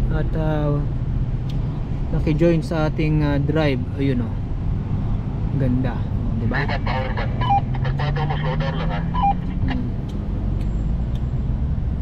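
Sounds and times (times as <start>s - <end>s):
car engine: 0.0s - 12.0s
short electronic beeps: 7.0s - 9.6s.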